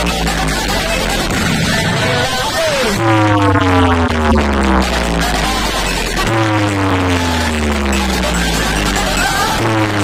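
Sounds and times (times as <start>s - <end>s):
electronic dance music: 0.0s - 10.0s
heavy bass tone: 0.0s - 10.0s
falling synth tone: 1.1s - 7.3s.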